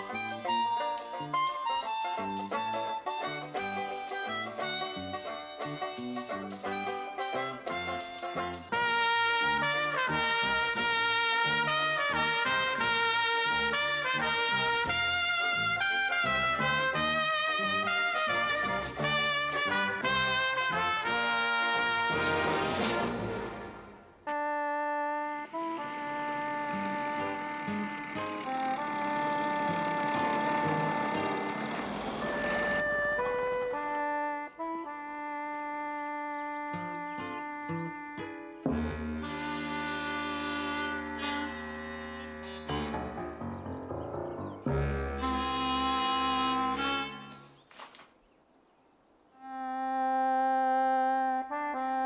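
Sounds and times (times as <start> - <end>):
ensemble theme music: 22.1 - 35.4, 38.7 - 46.0.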